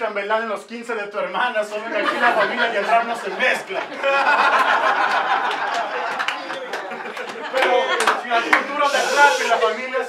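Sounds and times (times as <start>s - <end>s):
men talking at once: 1.2s - 4.1s, 5.6s - 10.0s.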